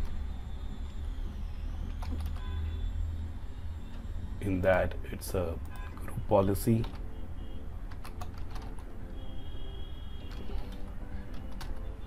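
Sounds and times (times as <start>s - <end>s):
low hum: 0.0s - 6.3s
computer keyboard typing: 7.9s - 9.0s, 10.2s - 12.0s.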